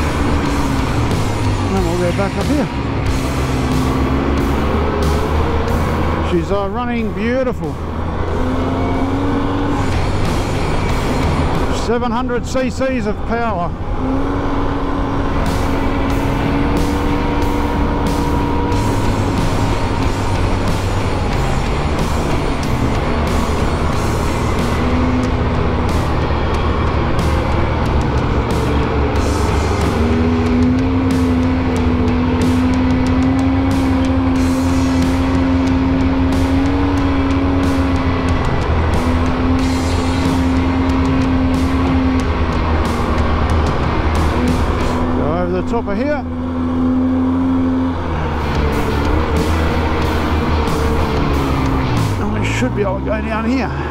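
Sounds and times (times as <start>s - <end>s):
background music: 0.0s - 53.9s
quad engine running: 0.0s - 53.9s.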